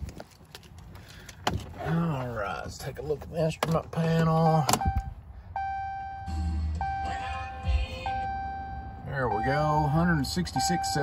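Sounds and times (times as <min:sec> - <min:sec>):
dashboard warning chime: 0:04.6 - 0:11.0.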